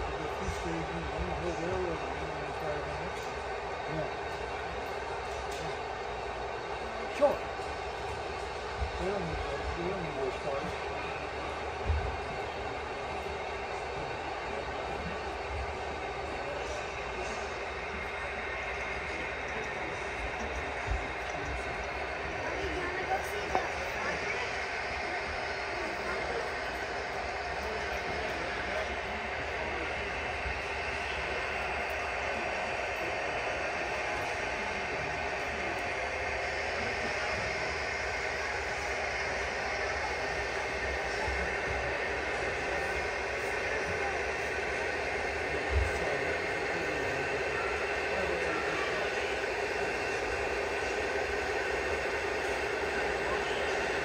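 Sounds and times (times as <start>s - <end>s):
crowd talking: 0.0s - 54.0s
model train rolling on track: 0.0s - 54.0s.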